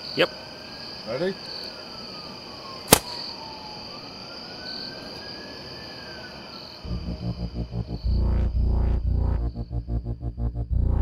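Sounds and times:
crickets chirping: 0.0s - 11.0s
pulsing electronic music: 6.9s - 11.0s.

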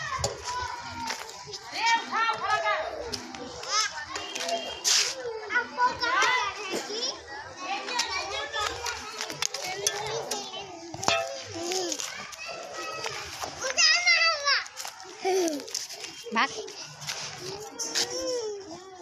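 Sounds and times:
young children calling and babbling: 0.0s - 19.0s.

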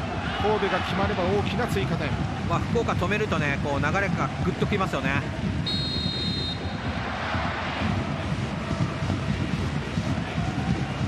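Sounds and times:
stadium crowd noise: 0.0s - 11.0s
referee's whistle blast: 5.7s - 6.8s.

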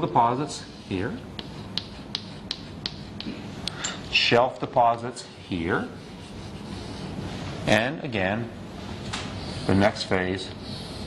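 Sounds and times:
chalk tapping on chalkboard: 1.4s - 3.4s.

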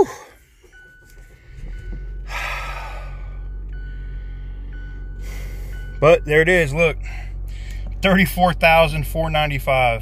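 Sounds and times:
car engine starting and idling: 0.0s - 10.0s.

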